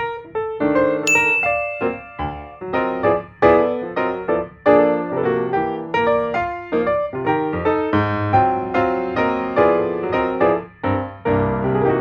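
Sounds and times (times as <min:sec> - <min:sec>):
bright ding chime: 0:01.1 - 0:03.1
light piano tune: 0:01.1 - 0:12.0.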